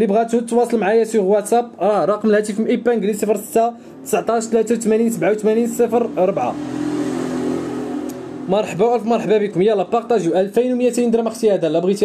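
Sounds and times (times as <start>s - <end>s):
vehicle engine droning: 2.5s - 11.2s.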